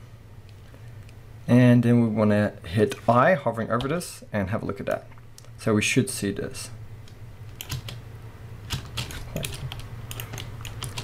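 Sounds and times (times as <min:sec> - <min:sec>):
keyboard and mouse clicks: 0:07.0 - 0:08.0, 0:08.7 - 0:11.0.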